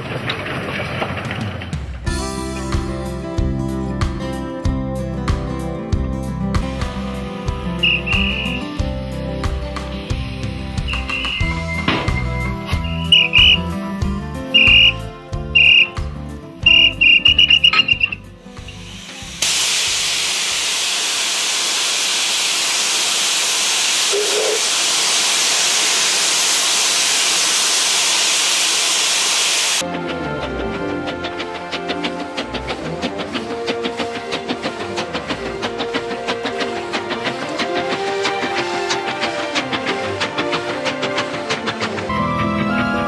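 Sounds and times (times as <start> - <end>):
guitar music: 2.1 - 18.8
steam locomotive hissing: 6.2 - 43.0
short high whistle toots: 7.8 - 8.8, 10.9 - 13.7, 14.6 - 15.0, 15.6 - 16.0, 16.6 - 18.2.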